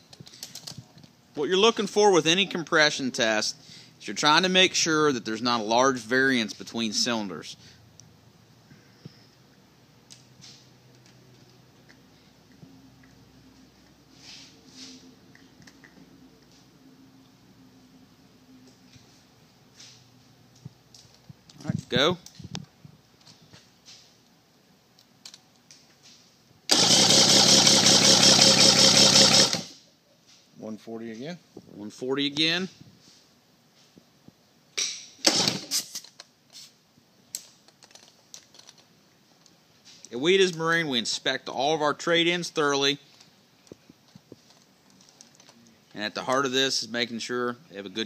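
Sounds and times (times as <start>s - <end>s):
outboard engine starter cranking: 26.7s - 29.7s, 35.3s - 35.7s.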